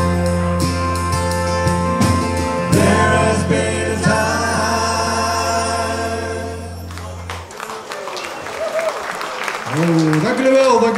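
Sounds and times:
live band chord: 0:00.0 - 0:07.4
audience applause: 0:06.9 - 0:10.9.

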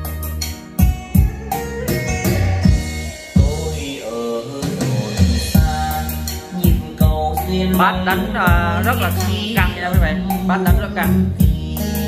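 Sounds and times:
song with heavy bass and drums: 0:00.0 - 0:12.0.

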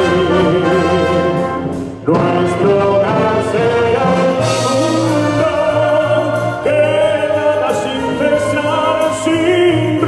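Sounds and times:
wind band playing a ballad: 0:00.0 - 0:10.0.

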